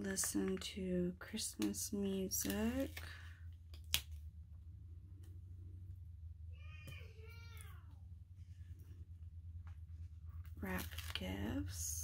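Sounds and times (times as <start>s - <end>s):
low steady hum: 0.0s - 12.0s
cat meowing faintly: 6.5s - 8.0s.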